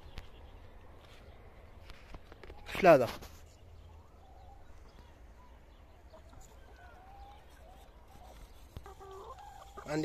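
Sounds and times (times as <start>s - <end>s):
hens clucking softly: 4.1s - 10.0s.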